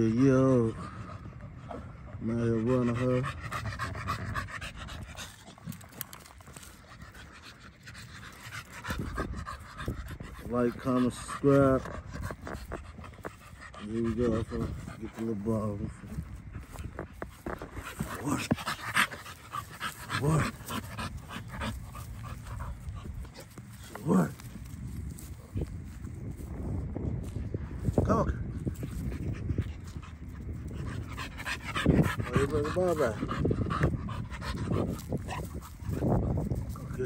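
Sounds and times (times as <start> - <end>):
dog panting: 0.3 - 25.7, 28.6 - 37.0.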